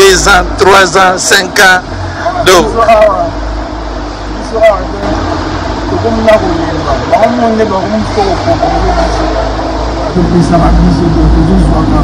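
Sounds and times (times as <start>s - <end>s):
man talking: 0.0s - 3.4s, 5.9s - 12.0s.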